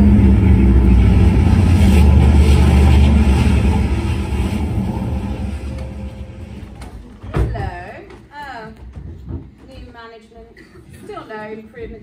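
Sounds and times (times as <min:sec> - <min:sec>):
loud rumbling sound effect: 0:00.0 - 0:07.8.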